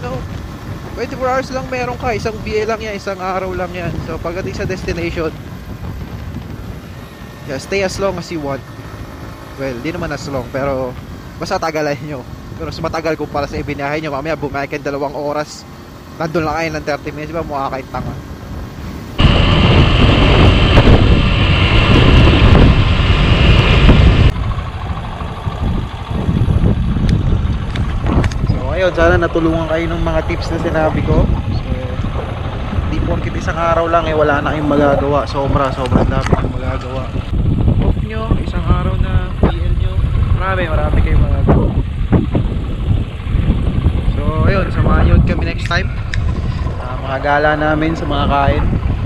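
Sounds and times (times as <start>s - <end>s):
wind buffeting microphone: 0.0s - 15.2s, 16.3s - 49.0s
motorcycle engine: 0.0s - 49.0s
road noise: 0.0s - 49.0s.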